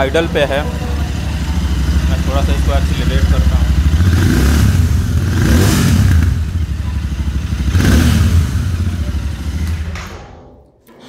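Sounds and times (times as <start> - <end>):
motorcycle engine idling: 0.0 - 10.1.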